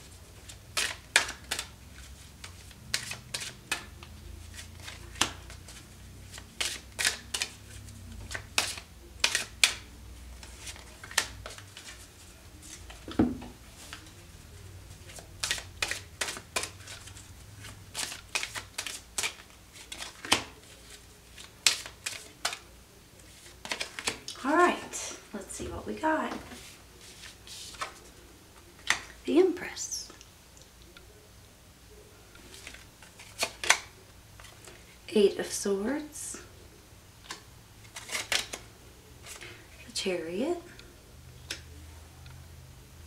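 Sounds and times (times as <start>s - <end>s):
cards shuffled by hand: 0.4s - 13.2s, 15.0s - 22.7s, 23.3s - 24.3s, 26.5s - 28.1s, 32.4s - 34.8s, 37.8s - 39.6s.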